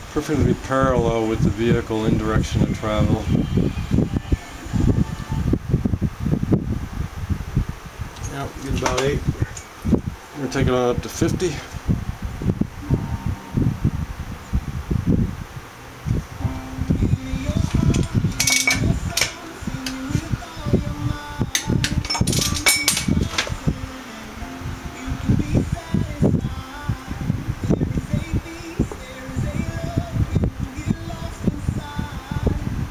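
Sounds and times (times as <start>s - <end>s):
faint steady hum: 0.0s - 32.9s
wind buffeting microphone: 0.4s - 24.0s, 24.6s - 32.9s.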